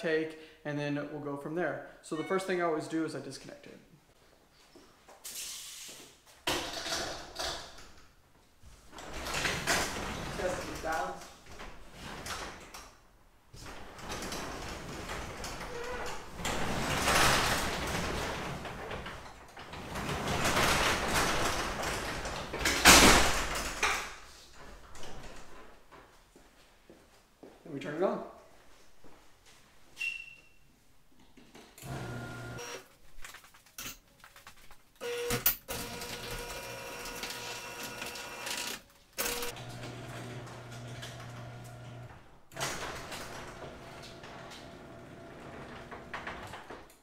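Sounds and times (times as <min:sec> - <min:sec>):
garage door rumbling along tracks: 0:13.7 - 0:22.6, 0:39.3 - 0:46.9
garage door banging shut: 0:19.7 - 0:24.2, 0:39.2 - 0:46.9.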